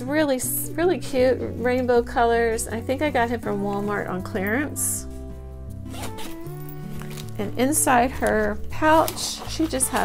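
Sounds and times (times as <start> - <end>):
soft background music: 0.0 - 10.0
zipper being pulled open: 5.8 - 10.0.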